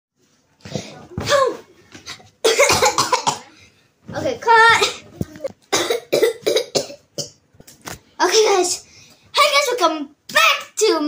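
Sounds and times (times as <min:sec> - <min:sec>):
girl coughing: 0:00.7 - 0:01.6, 0:02.4 - 0:03.5, 0:04.8 - 0:05.0, 0:05.7 - 0:07.4.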